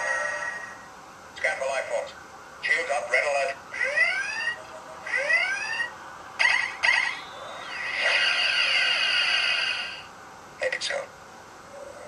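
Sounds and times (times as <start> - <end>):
long steady electronic effect: 3.7 - 10.6
alert klaxon whooping: 3.8 - 10.0
short electronic bursts: 3.8 - 10.1.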